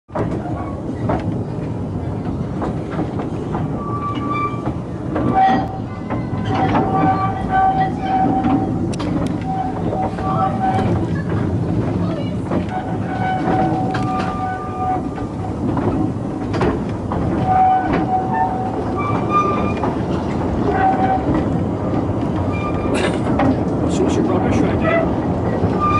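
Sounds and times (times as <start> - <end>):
clicks over rail joints: 0.1 - 24.0
train rumbling along track: 0.1 - 25.9
wheels squealing: 3.4 - 25.9.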